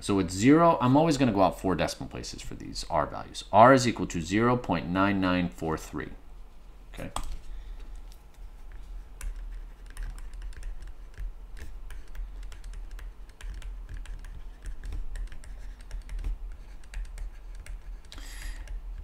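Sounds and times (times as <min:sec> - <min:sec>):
low steady hum: 0:00.0 - 0:19.0
stylus tapping on tablet screen: 0:08.7 - 0:19.0.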